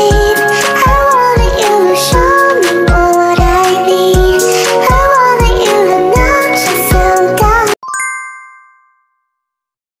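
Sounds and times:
bright ding chime: 0:07.8 - 0:09.4.

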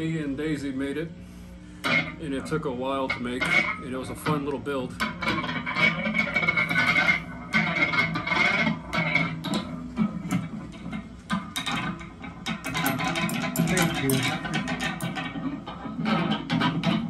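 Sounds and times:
twangy clanking electric tones: 0:01.8 - 0:17.0.

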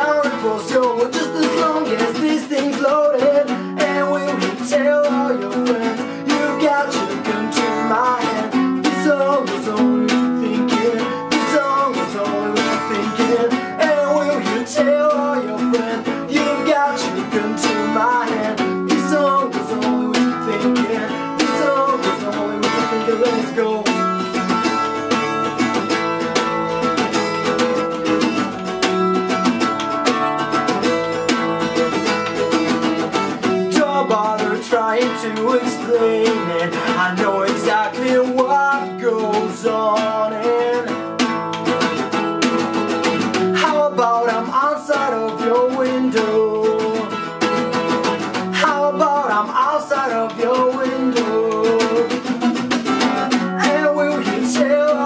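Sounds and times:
man singing: 0:00.0 - 0:29.0, 0:29.6 - 0:55.0
strummed acoustic guitar: 0:00.0 - 0:55.0.

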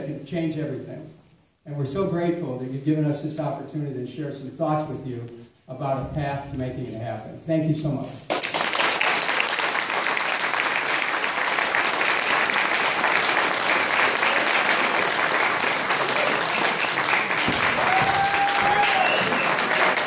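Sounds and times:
audience applauding: 0:08.3 - 0:20.0.

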